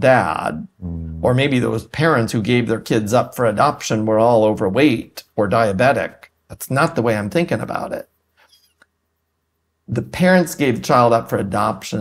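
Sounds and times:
man talking: 0.0 - 8.1, 9.9 - 12.0.

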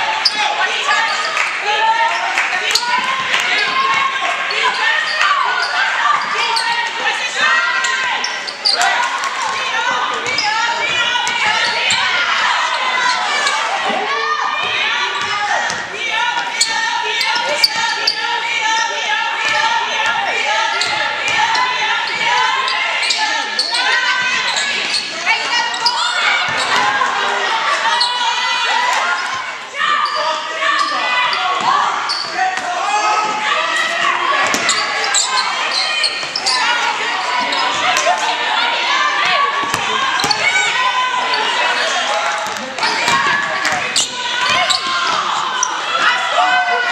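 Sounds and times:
players and spectators voices: 0.0 - 46.9
basketball bouncing on court: 39.3 - 40.4.

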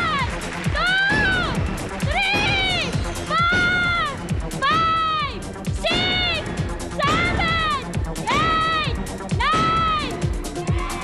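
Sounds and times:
upbeat music with drum beat: 0.0 - 11.0.

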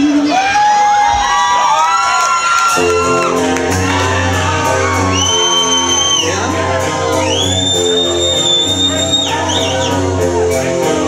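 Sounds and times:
crowd whooping and shouting: 0.0 - 10.6
live rock band: 2.3 - 11.0
ringing guitar and bass chords: 2.8 - 11.0.

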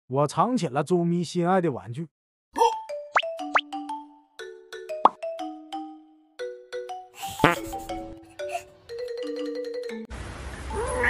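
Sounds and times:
playful plucked music: 2.6 - 10.1.

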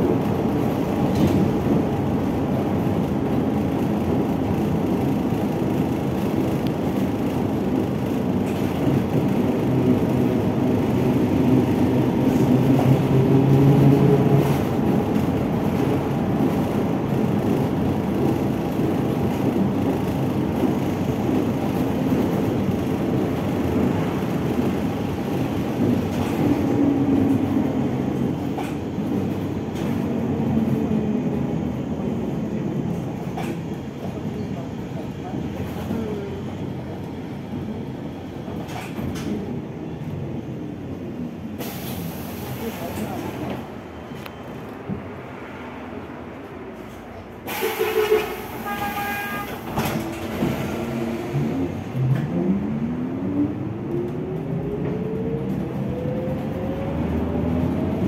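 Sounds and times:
road rumble: 0.0 - 58.0
air hiss burst: 41.6 - 42.6, 47.5 - 48.6.

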